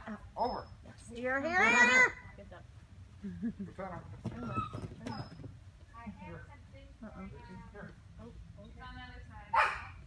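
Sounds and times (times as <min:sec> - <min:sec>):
dog bark: 0:09.5 - 0:10.0.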